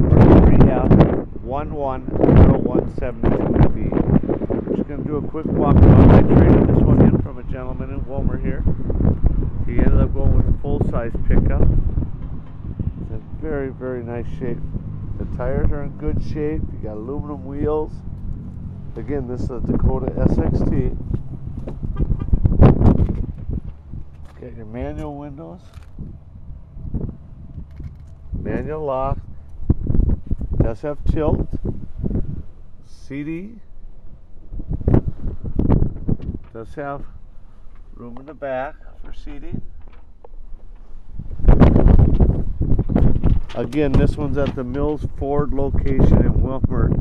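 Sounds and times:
microphone handling noise: 0.0 - 32.6, 34.0 - 47.0
wind rumble: 0.0 - 47.0.

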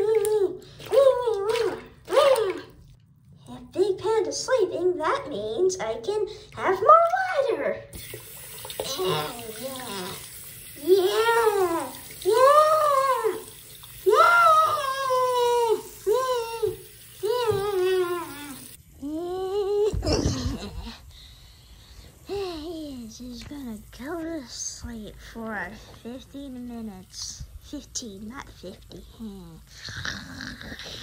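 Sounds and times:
high-pitched wordless sing-song voice: 0.0 - 2.8.

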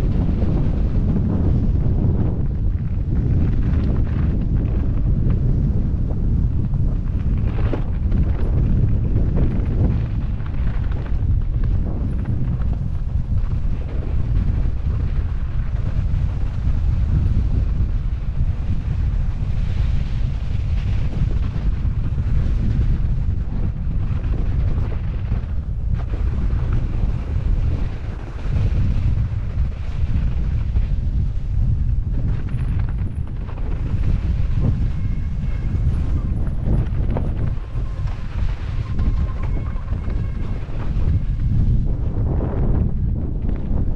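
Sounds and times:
wind buffeting microphone: 0.0 - 43.9
tyres rolling over snow: 0.1 - 42.8.

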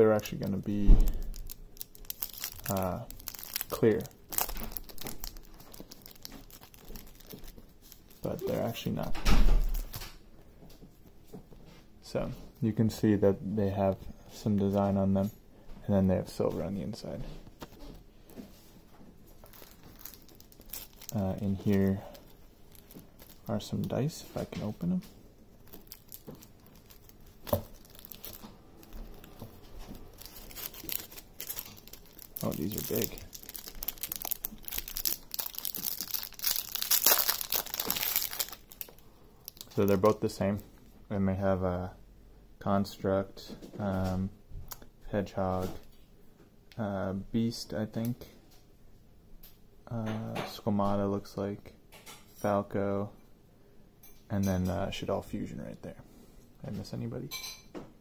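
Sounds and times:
plastic packaging crinkling: 0.2 - 10.1, 19.3 - 40.6.

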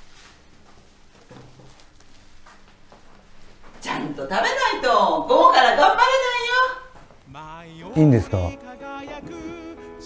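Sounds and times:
woman speaking: 3.8 - 7.0.

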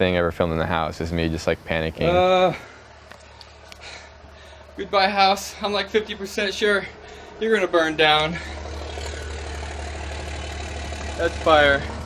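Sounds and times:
car engine idling: 0.4 - 12.0.

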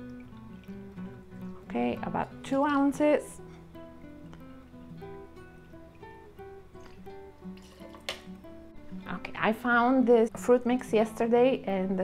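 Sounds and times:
guitar plucking slow notes: 0.0 - 10.8.

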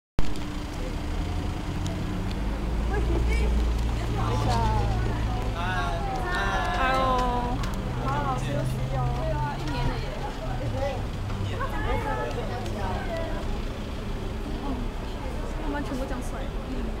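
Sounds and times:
vehicle engine idling: 0.2 - 17.0
high-pitched voices chattering: 1.7 - 17.0.

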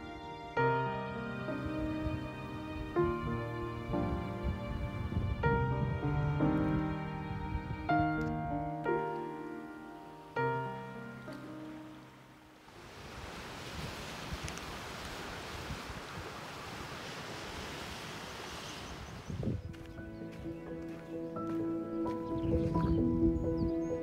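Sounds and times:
background music: 0.0 - 12.6, 19.6 - 24.0
piano piece: 0.0 - 12.7, 19.5 - 24.0
wind by the shore: 0.0 - 20.9
sea waves rushing: 11.6 - 19.4.

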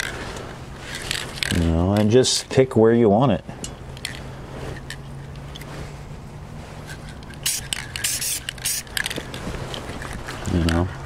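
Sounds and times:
steady low hum: 0.0 - 11.0
spray paint can hissing: 7.4 - 9.1.

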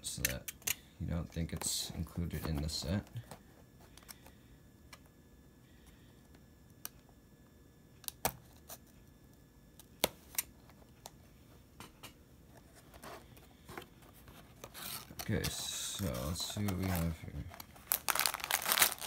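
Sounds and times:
cardboard flap rustling: 14.2 - 19.0.

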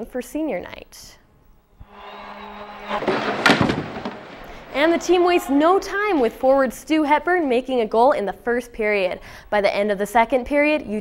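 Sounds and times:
crowd noise: 2.0 - 7.7.

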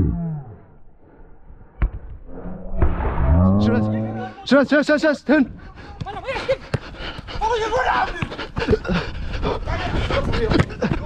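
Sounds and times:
voices calling: 3.6 - 11.0
man laughing and panting: 5.5 - 11.0.

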